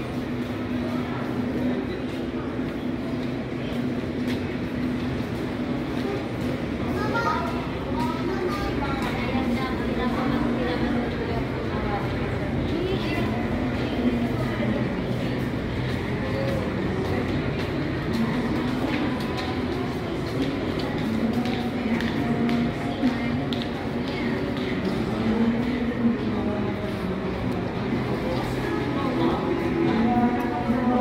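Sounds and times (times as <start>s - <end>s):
faint background chatter: 0.0s - 31.0s.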